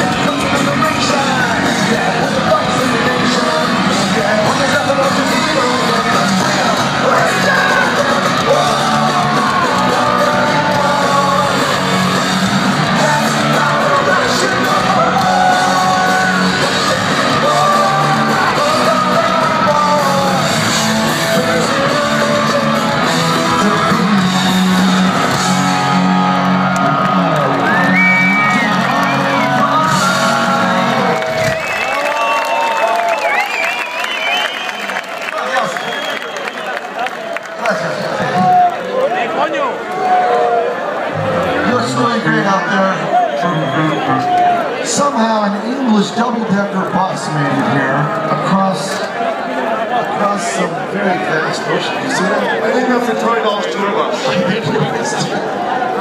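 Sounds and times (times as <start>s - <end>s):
live punk rock band: 0.0s - 31.9s
crowd cheering and whooping: 0.0s - 45.3s.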